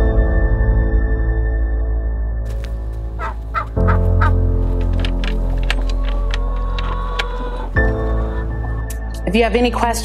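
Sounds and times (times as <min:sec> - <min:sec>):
background music: 0:00.0 - 0:10.0
poultry calling: 0:02.5 - 0:08.9.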